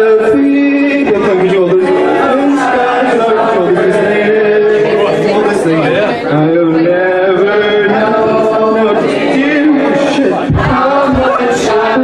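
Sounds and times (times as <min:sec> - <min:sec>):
men singing and chanting: 0:00.0 - 0:12.0.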